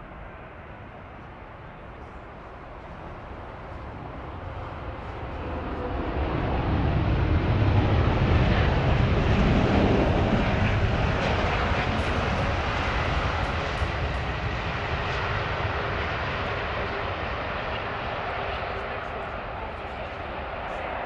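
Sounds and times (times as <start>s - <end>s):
jet engines rushing: 0.0s - 21.0s.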